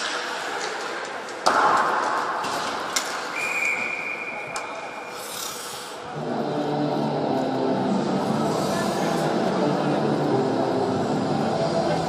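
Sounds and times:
referee's whistle: 3.3 - 4.6
hall noise: 6.0 - 12.0.

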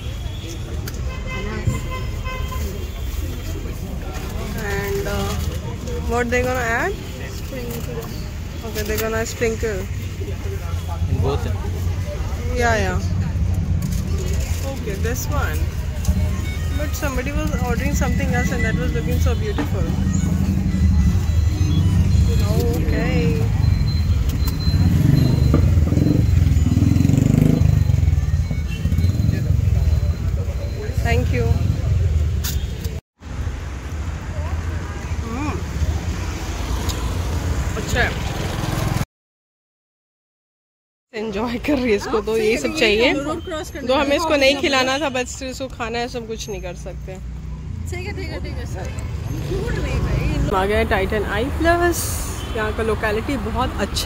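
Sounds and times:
low rumble of street noise: 0.0 - 39.0, 41.2 - 54.0
indistinct voices: 2.7 - 32.2.

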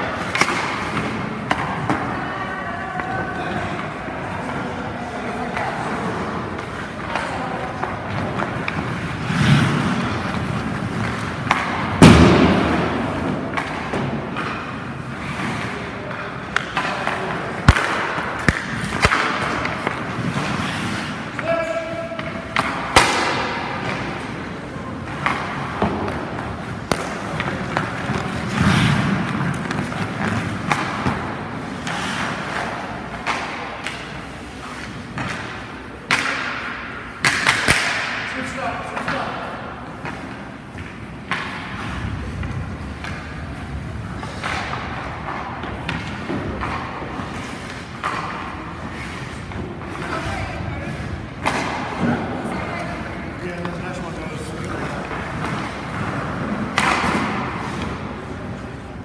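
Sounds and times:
hockey pucks cracking off sticks: 0.0 - 2.1, 5.4 - 21.4, 22.1 - 50.3, 50.9 - 53.0, 53.6 - 59.0
skate blades scraping ice: 7.6 - 12.0, 12.6 - 21.4, 23.8 - 35.9, 39.9 - 51.4.

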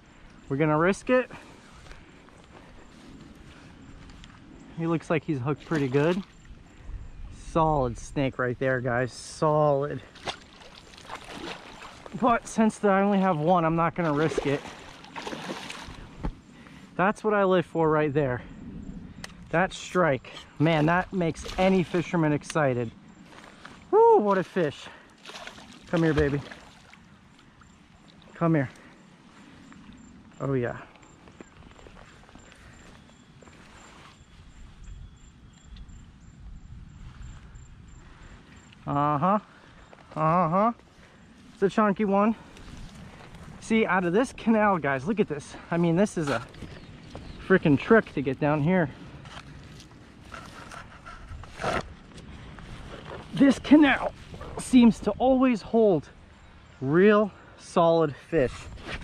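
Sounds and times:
faint water splashing: 9.8 - 16.8, 23.3 - 30.0
fish splashing in water: 10.1 - 12.2, 14.0 - 16.1, 25.2 - 27.1.

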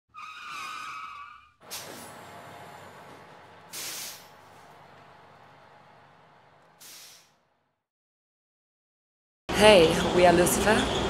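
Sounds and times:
tyre screech: 0.1 - 2.1
hiss: 1.7 - 2.1, 3.7 - 4.4, 6.8 - 7.4.

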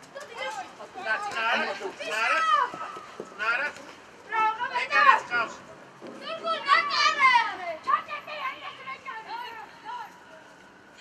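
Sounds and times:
children shouting: 6.2 - 10.0.

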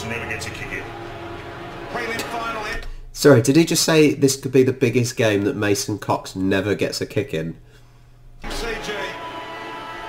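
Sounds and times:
background music held notes: 0.0 - 2.7, 8.4 - 10.0.

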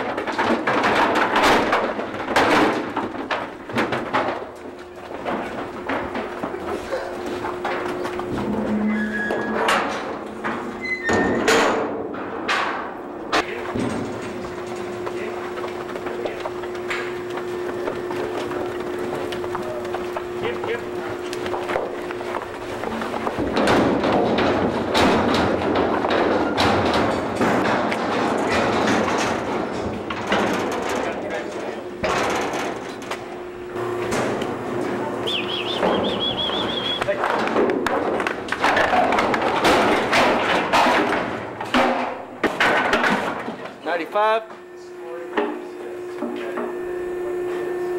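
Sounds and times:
metal panels knocking and clanging: 0.0 - 35.2, 37.0 - 43.8
handlers' voices: 4.8 - 9.9, 13.3 - 25.0, 28.1 - 40.2, 43.5 - 47.9.

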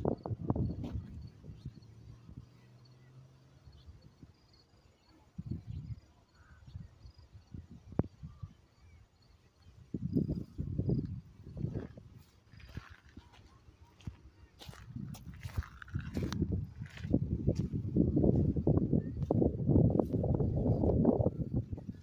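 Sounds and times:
wind buffeting microphone: 0.0 - 2.6, 5.4 - 8.6, 9.7 - 22.0.

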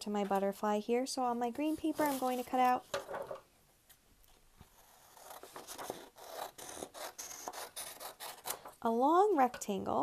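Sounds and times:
scissors cutting paper: 4.7 - 8.6.

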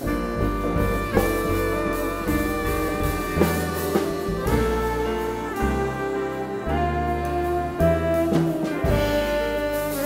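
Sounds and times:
jazz band playing: 0.0 - 10.0.

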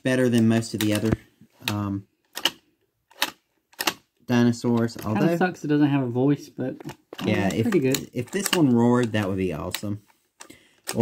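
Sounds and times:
plastic toy clicks: 0.3 - 4.0, 7.3 - 11.0.

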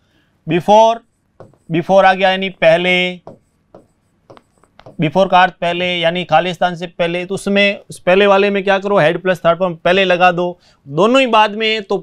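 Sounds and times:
marker pen writing on whiteboard: 0.9 - 5.4.

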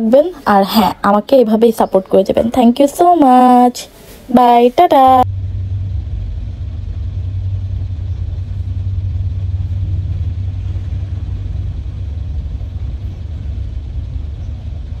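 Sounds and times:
vehicle engine idling: 5.2 - 15.0.

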